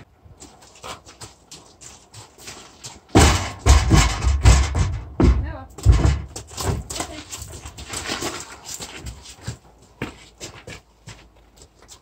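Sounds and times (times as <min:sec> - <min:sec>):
hooves thudding on a ramp: 0:00.0 - 0:12.0.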